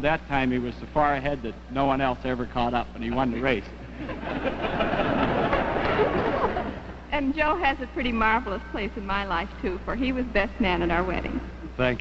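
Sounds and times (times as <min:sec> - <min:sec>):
studio audience laughing: 0:03.0 - 0:07.0.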